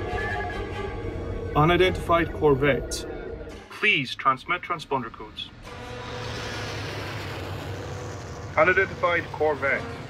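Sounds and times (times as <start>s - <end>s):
spaceship engine drone: 0.0s - 3.8s, 4.6s - 10.0s
hiss: 5.8s - 9.6s.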